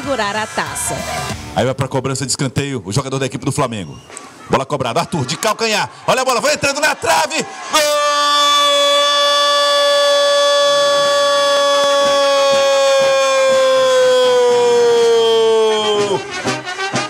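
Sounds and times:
commentator's long goal cry: 0:07.1 - 0:16.1.

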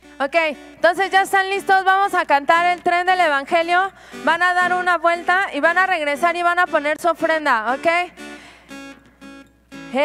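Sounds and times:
acoustic guitar strumming chords: 0:00.0 - 0:10.0.

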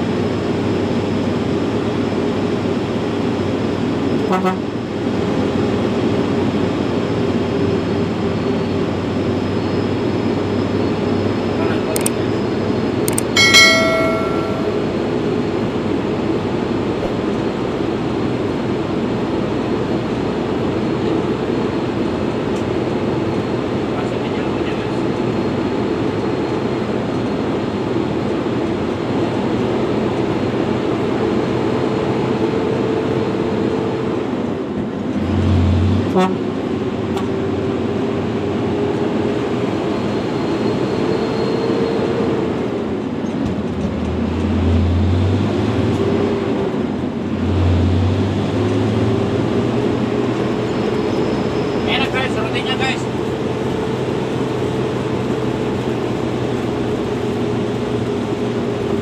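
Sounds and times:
cab and road noise: 0:00.0 - 0:59.0
short ringing tone: 0:13.2 - 0:15.2.

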